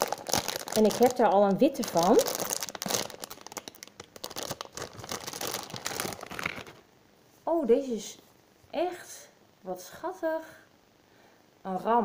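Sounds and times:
plastic bag crinkling: 0:00.0 - 0:06.9.

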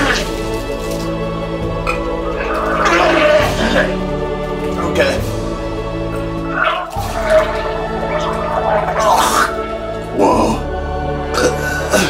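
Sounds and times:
background music: 0:00.0 - 0:12.0
man gagging and retching: 0:01.8 - 0:04.0, 0:06.4 - 0:10.6, 0:11.3 - 0:12.0.

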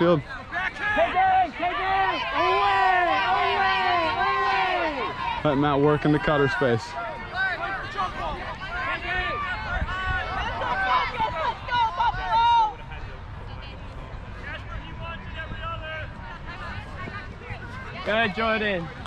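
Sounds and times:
distant people shouting: 0:00.5 - 0:12.9.

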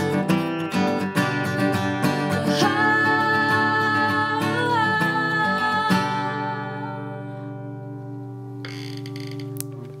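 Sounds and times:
acoustic guitar chord ringing: 0:00.0 - 0:10.0
scratchy noise on guitar strings: 0:08.6 - 0:10.0.

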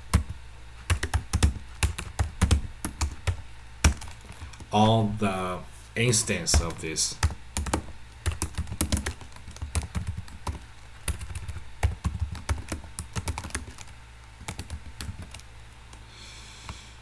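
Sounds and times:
keyboard typing: 0:00.1 - 0:04.7, 0:06.0 - 0:15.5.

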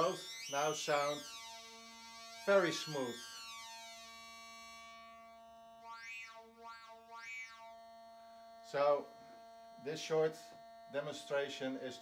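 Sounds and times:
synthesizer sync tone sweeping: 0:00.0 - 0:05.7.

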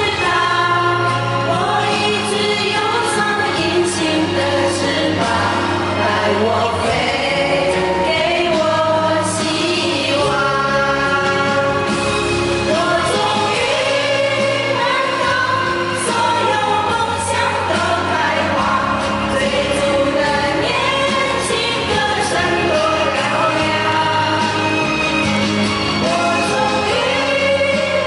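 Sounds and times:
women singing together: 0:00.0 - 0:25.2, 0:26.0 - 0:28.0
amplified backing music: 0:00.0 - 0:28.0.

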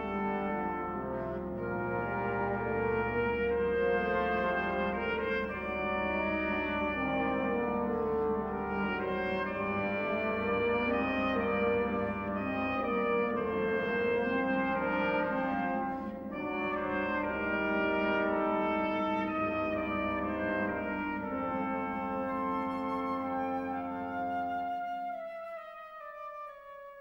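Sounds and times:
orchestral brass chords: 0:00.0 - 0:27.0.

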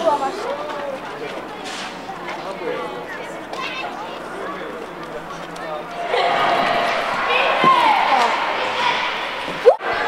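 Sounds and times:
voices chattering in echoing hall: 0:00.0 - 0:10.0.

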